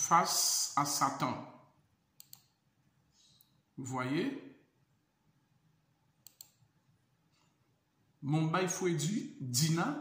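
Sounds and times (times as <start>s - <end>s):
computer mouse clicks: 2.2s - 2.6s, 6.2s - 6.7s.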